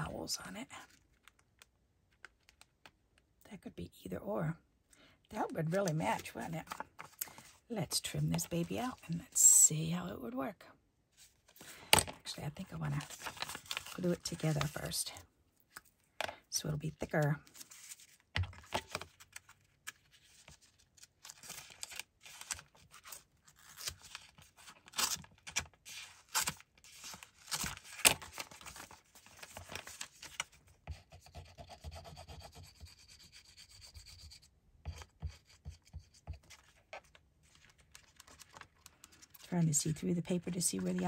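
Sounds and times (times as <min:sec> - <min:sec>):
paper rustling and sliding: 0:13.0 - 0:14.8, 0:17.5 - 0:24.5.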